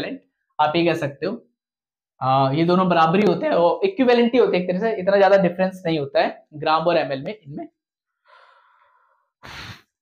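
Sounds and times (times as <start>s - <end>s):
man breathing close to microphone: 8.1s - 10.0s.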